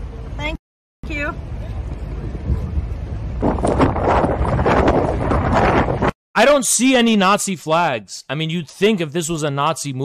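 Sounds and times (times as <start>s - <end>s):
wind buffeting microphone: 1.4s - 6.2s.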